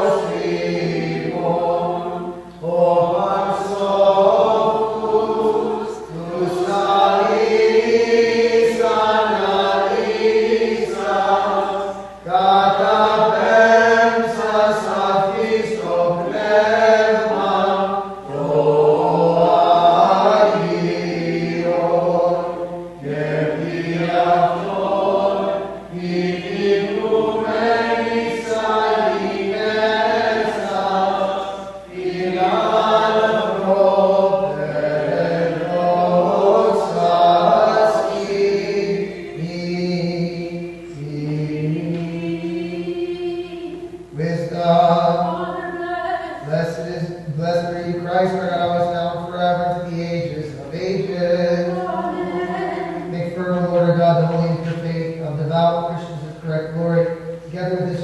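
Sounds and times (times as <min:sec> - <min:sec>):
unaccompanied chant: 0:00.0 - 0:58.0.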